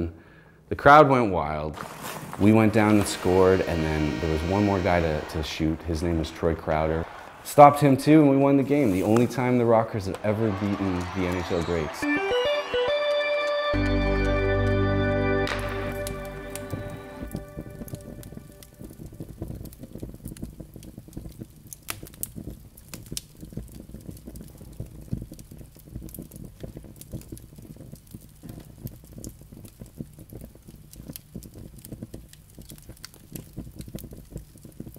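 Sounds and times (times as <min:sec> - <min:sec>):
campfire crackling and popping: 0:01.8 - 0:34.9
music: 0:03.0 - 0:05.4, 0:11.4 - 0:19.2.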